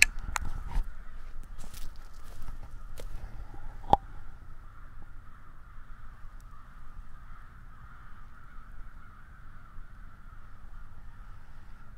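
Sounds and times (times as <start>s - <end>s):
low rumble of wind: 0.0s - 11.9s.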